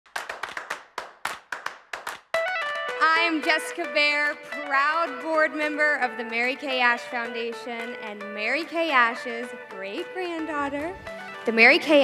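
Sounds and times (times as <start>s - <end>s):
sharp handclaps: 0.0s - 3.0s.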